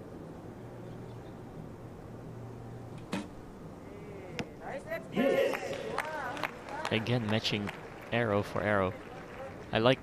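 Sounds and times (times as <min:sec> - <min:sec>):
low steady background hum: 0:00.0 - 0:10.0.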